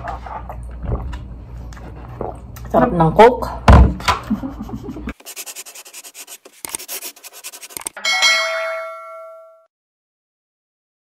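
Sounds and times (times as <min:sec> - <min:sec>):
scratchy pen writing on paper: 0:05.2 - 0:08.0
bright chime: 0:08.0 - 0:09.7.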